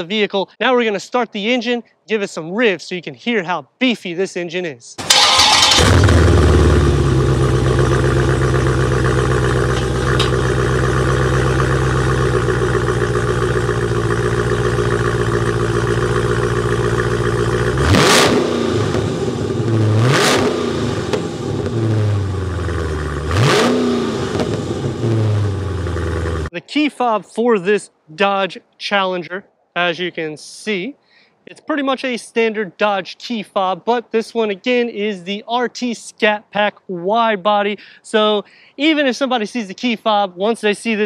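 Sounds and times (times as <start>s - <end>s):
car engine starting and idling: 5.0s - 26.5s
engine revving: 5.0s - 26.5s.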